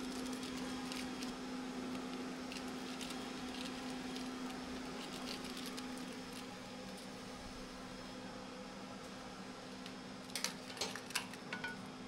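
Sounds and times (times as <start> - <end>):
low equipment hum: 0.0 - 12.0.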